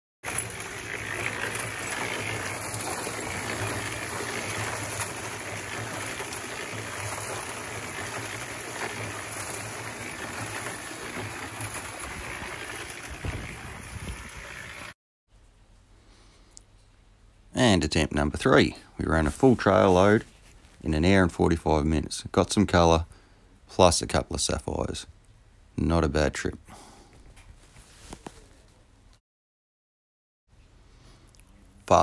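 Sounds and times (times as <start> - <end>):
cement mixer humming: 0.2 - 15.0
water gushing into turning barrel: 0.2 - 15.0.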